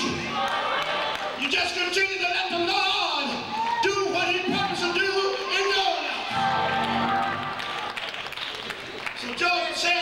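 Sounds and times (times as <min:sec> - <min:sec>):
scattered clapping: 0:06.6 - 0:10.0.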